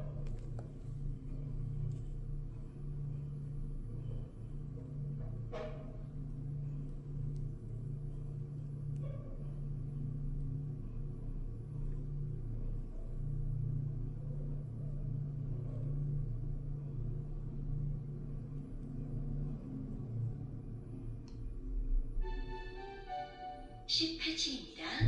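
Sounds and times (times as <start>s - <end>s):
elevator rumble and hum: 0.0s - 25.0s.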